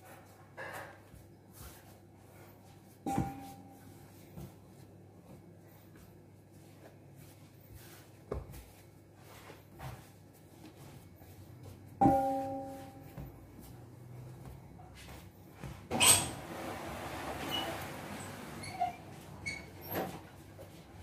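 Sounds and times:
dough kneaded on stone counter: 0.0 - 21.0.

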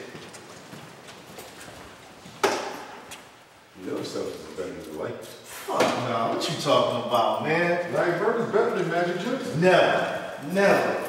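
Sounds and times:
footsteps on hard polished floor: 0.0 - 3.3.

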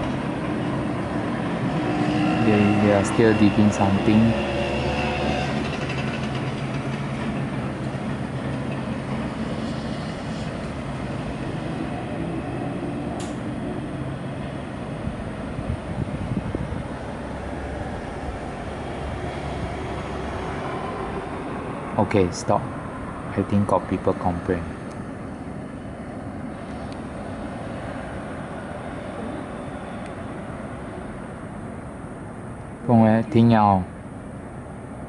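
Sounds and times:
excavator diesel engine rumbling: 0.0 - 35.0.

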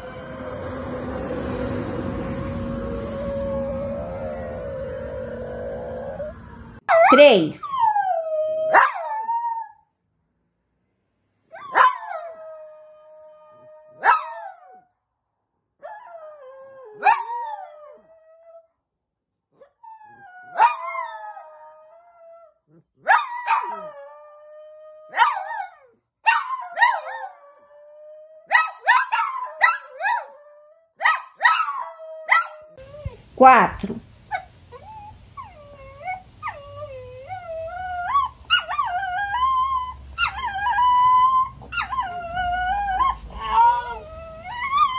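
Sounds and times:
small dog howling: 2.6 - 7.2, 7.8 - 9.8, 15.8 - 18.6, 19.9 - 33.2, 34.3 - 44.9.

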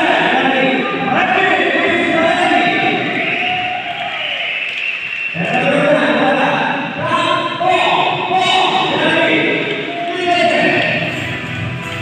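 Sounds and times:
voices talking: 0.0 - 4.5.

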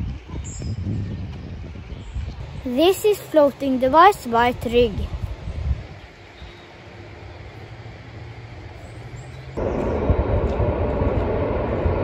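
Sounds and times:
low rumble: 9.5 - 12.0.

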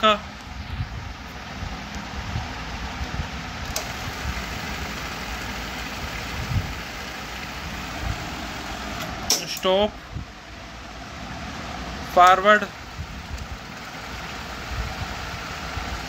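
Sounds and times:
cassette deck rewinding tape: 3.6 - 9.2.

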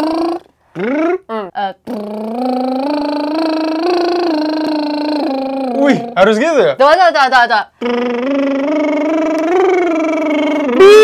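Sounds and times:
singer lip trill: 0.0 - 6.4, 7.6 - 11.0
short voiced syllables: 0.0 - 6.5, 7.2 - 11.0.

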